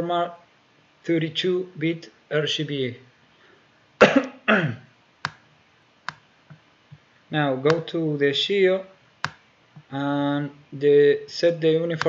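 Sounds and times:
person coughing: 4.0 - 4.9.

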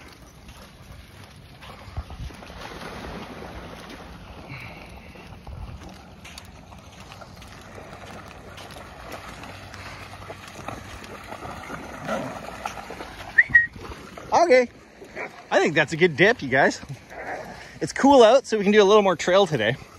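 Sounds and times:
dogs splashing through water: 0.0 - 19.9
moving water: 0.0 - 19.9.

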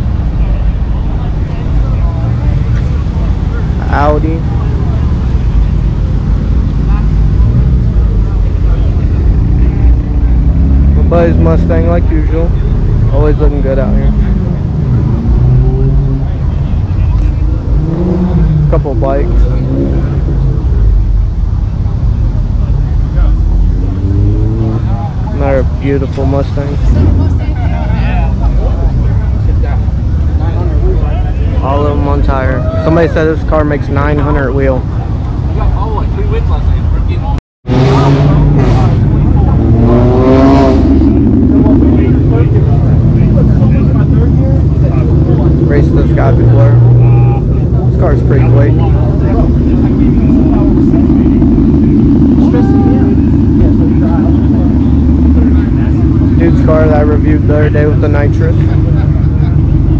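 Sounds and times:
car engine idling: 0.0 - 59.9
people talking in background: 0.0 - 59.9
steady low rumble: 0.0 - 59.9.

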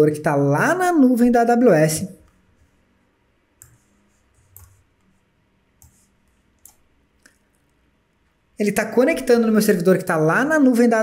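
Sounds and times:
computer mouse clicks: 3.6 - 5.2, 5.8 - 7.8.

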